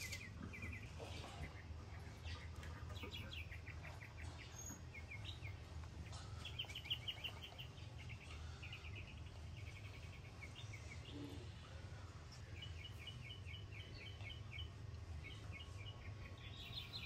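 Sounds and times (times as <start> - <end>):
small bird chirping in trills: 0.0 - 17.0
steady low hum: 0.0 - 17.0.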